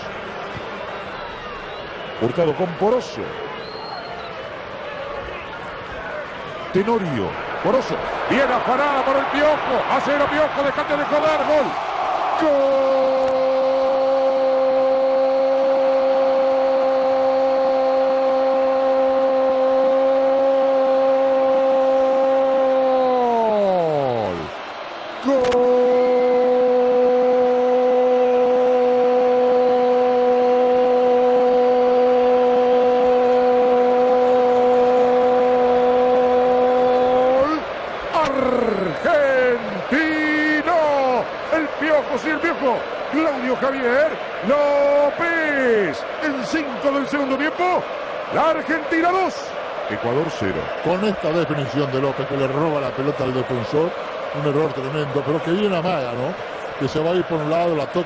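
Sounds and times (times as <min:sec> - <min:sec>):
rapid excited commentary: 0:06.2 - 0:13.8, 0:36.5 - 0:58.0.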